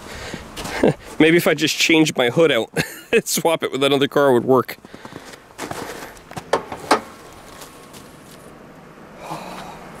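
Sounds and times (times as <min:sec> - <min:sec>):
car hood latch clicks: 0:06.5 - 0:07.1.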